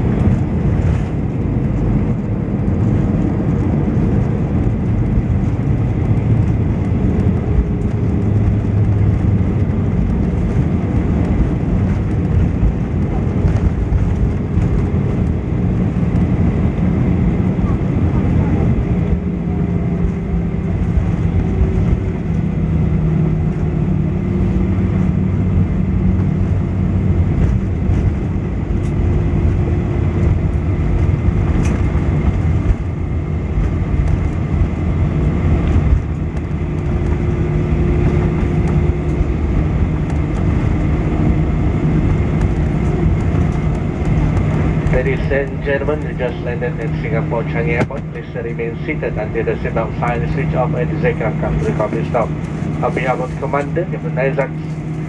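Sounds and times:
jet engines humming: 0.0s - 55.0s
low rumble of wheels: 0.0s - 55.0s.

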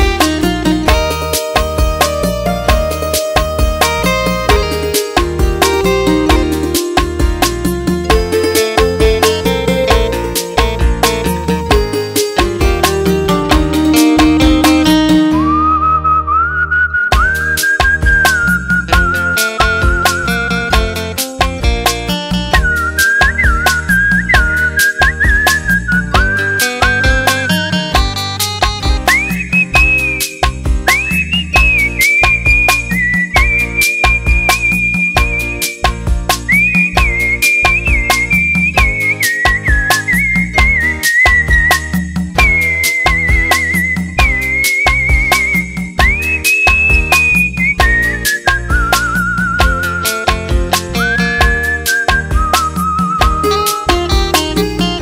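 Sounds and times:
band drums and bass: 0.0s - 15.5s, 17.1s - 55.0s
instrumental backing music: 0.0s - 55.0s
person whistling a melody: 15.1s - 20.8s, 22.5s - 27.8s, 28.8s - 54.2s.

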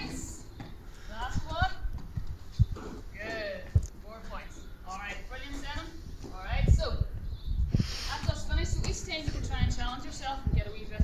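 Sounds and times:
ball and feet thudding on concrete: 0.0s - 6.8s, 8.1s - 11.0s.

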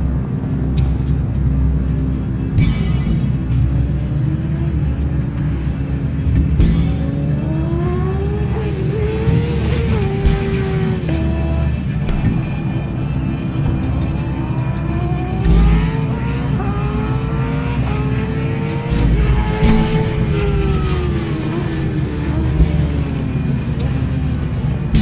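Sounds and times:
low rumble: 0.0s - 25.0s
music: 0.0s - 25.0s
vehicle engine revving: 0.0s - 25.0s.

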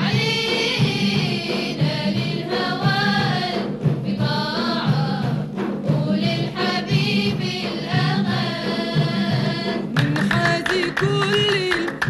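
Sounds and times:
women's chorus singing: 0.0s - 10.8s
steady drum beat: 0.0s - 12.0s.

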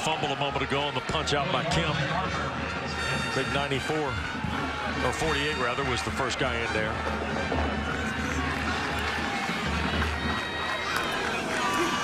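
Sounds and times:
music over stadium speakers: 0.0s - 12.0s
stadium crowd noise: 0.0s - 12.0s.

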